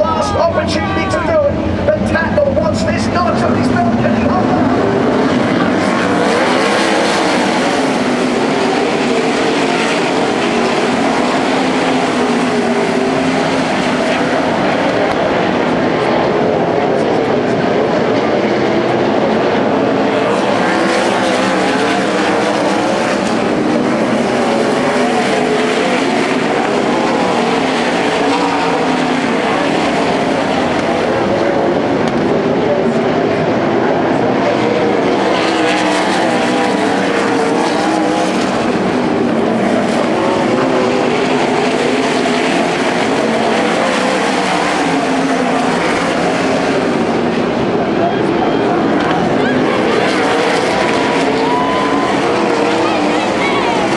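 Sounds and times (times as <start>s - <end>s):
race car engines droning: 0.0s - 53.9s.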